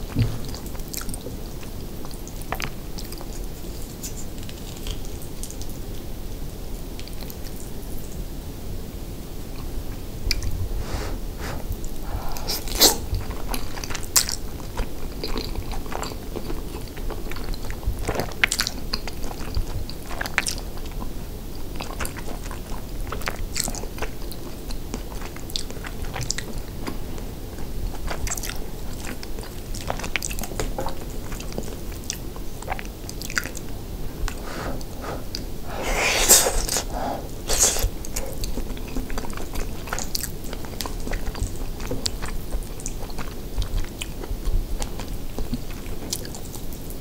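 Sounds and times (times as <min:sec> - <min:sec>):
close chewing mouth sounds: 0:11.9 - 0:47.0.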